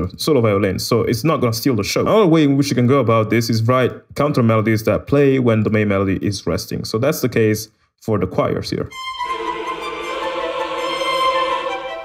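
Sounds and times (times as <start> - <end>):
orchestral strings: 8.9 - 12.0
virtual choir sustained notes: 8.9 - 12.0.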